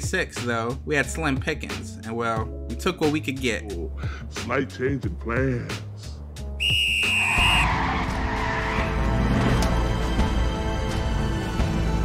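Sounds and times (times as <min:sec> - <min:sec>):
high tyre squeal: 0:06.6 - 0:09.4
vehicle skidding: 0:07.2 - 0:10.1.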